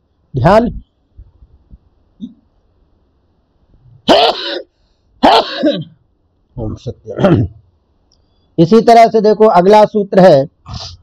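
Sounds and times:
man clearing throat: 0:04.1 - 0:06.0, 0:07.1 - 0:07.6
man coughing: 0:04.1 - 0:06.0, 0:07.1 - 0:07.6.

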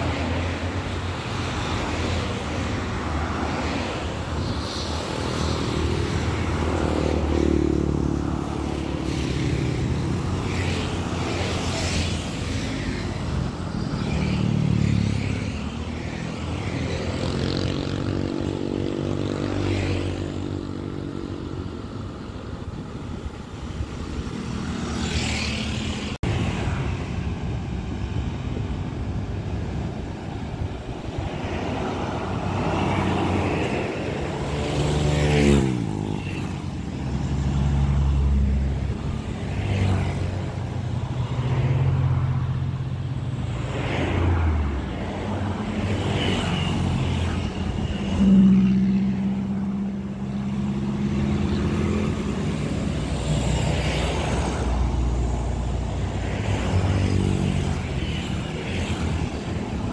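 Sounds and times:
scooters and cars passing: 0:00.0 - 0:59.9.

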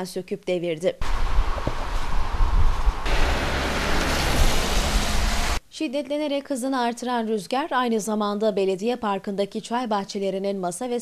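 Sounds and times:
wind buffeting microphone: 0:01.0 - 0:05.6.

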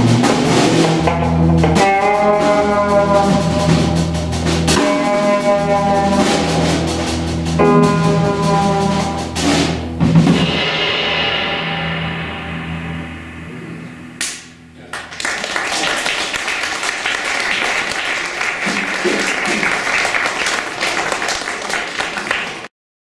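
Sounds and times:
jazz trio final chord: 0:00.0 - 0:14.8
audience applauding: 0:14.8 - 0:22.7.

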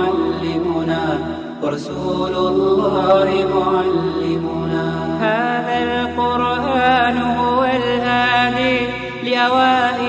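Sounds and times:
person singing wordless melody: 0:00.0 - 0:10.0.

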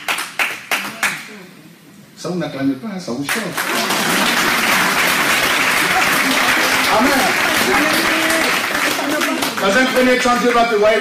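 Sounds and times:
hands clapping: 0:00.0 - 0:01.3, 0:03.3 - 0:10.7.

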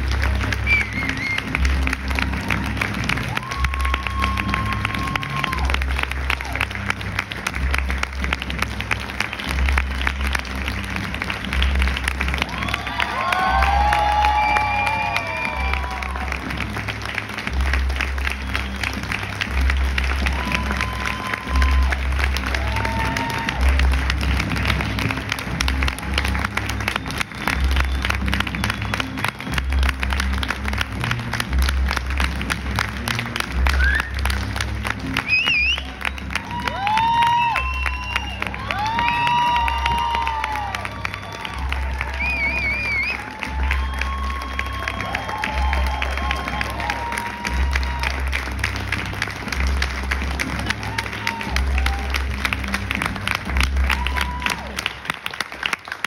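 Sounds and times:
music with pulsing bass beat: 0:00.0 - 0:54.8
audience applauding: 0:00.0 - 0:56.0
audience whooping and calling: 0:00.0 - 0:56.0.

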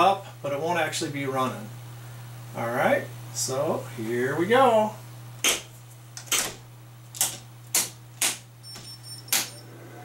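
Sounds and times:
circuit breakers clicking on: 0:05.4 - 0:09.8.

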